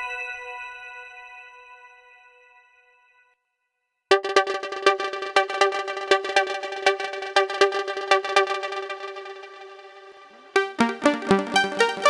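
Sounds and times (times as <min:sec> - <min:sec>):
synthesizer plucky notes: 0:04.1 - 0:12.0.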